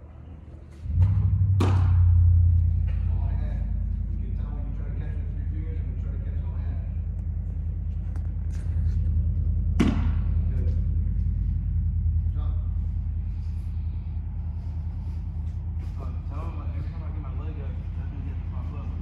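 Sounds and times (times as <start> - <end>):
low machine hum: 0.0 - 19.0
baseball smacking into mitt: 9.8 - 10.2.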